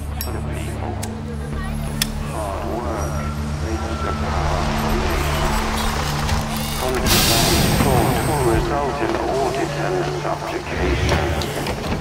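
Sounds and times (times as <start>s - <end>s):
low electronic drone: 0.0s - 12.0s.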